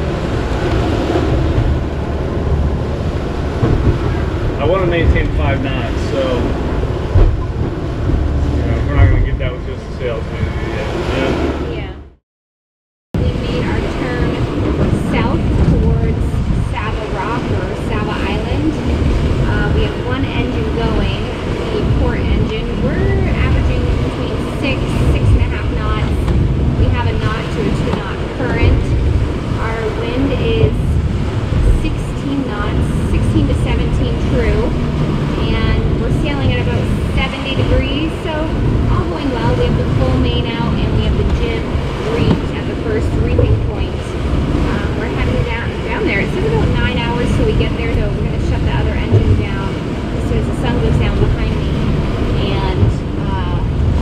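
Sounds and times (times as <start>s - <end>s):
water rushing along a hull: 0.0s - 12.2s, 13.2s - 54.0s
wind buffeting microphone: 0.0s - 12.2s, 13.2s - 54.0s
voices: 4.0s - 7.6s, 8.3s - 12.1s, 13.2s - 54.0s.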